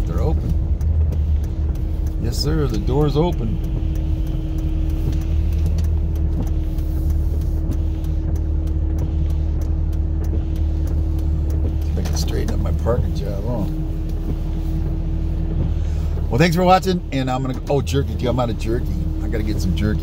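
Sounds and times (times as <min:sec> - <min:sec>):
car engine and road rumble: 0:00.0 - 0:20.0
constant cabin hum: 0:00.0 - 0:20.0.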